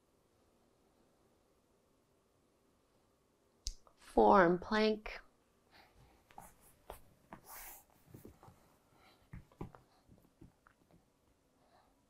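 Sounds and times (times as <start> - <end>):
soft taps and rustling: 6.0 - 11.1.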